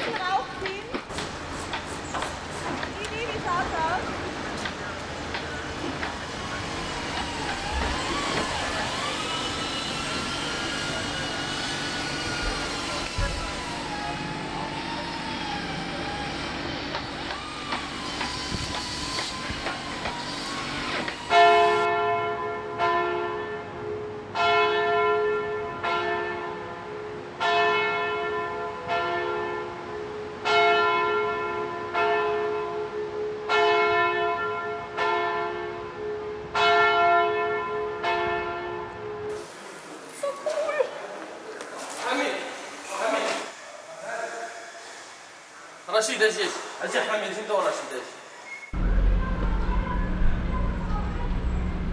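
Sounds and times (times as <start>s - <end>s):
church bells ringing: 21.2s - 39.3s.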